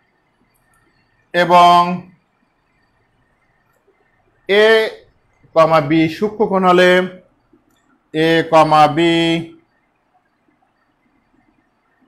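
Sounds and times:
faint room sound: 0:00.0 - 0:12.0
man's drawn-out voice: 0:01.4 - 0:02.1, 0:04.5 - 0:05.0, 0:05.6 - 0:07.2, 0:08.2 - 0:09.6.

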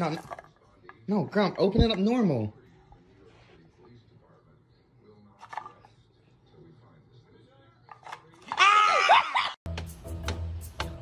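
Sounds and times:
woman screaming: 0:08.6 - 0:09.5.

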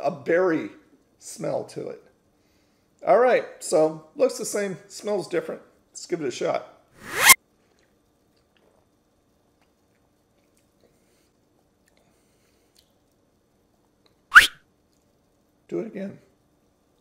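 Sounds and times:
faint steady hum: 0:00.0 - 0:17.0
sharp mouth sound: 0:14.3 - 0:14.6.

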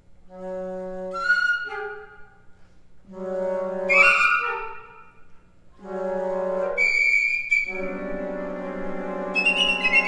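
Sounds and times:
flute ensemble playing: 0:00.3 - 0:10.0.

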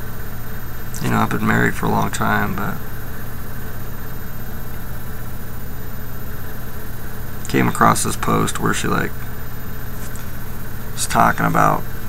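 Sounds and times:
constant hiss: 0:00.0 - 0:12.0
low hum: 0:00.0 - 0:12.0.

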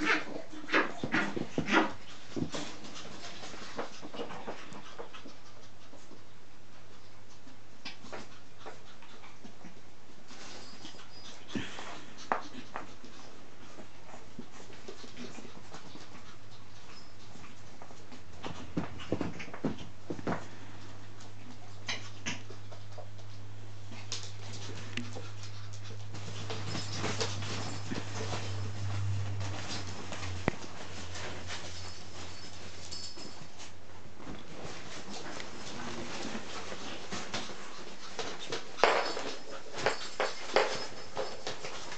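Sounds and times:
steady low hum: 0:19.8 - 0:39.1.

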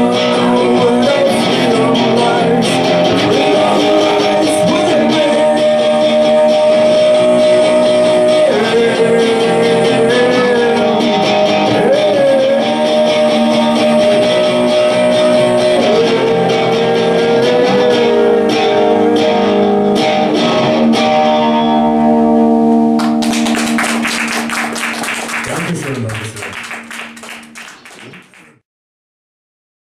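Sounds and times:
electric guitar solo: 0:00.0 - 0:28.4
audience applause: 0:23.0 - 0:28.6.

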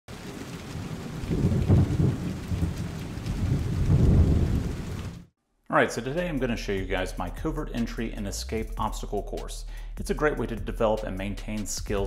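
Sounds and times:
low thunder rumbles: 0:00.1 - 0:05.3
steady rain: 0:00.1 - 0:05.3.

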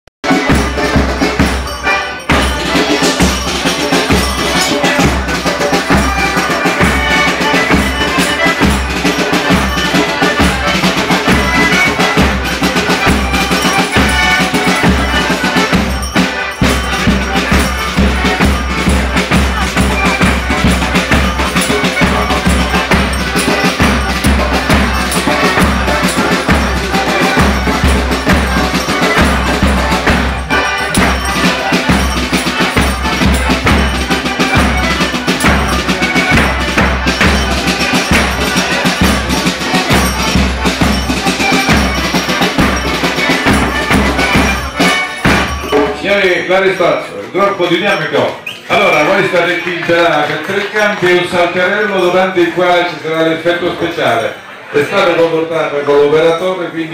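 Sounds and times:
steady drum beat: 0:00.2 - 0:46.2
live folk music: 0:00.2 - 0:56.9.

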